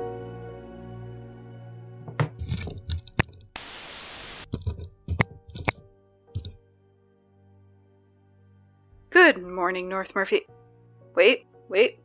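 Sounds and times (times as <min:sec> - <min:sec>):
burst of hissing static: 0:03.6 - 0:04.5
quick clicks: 0:06.4 - 0:06.6
sharp click: 0:06.4 - 0:06.6.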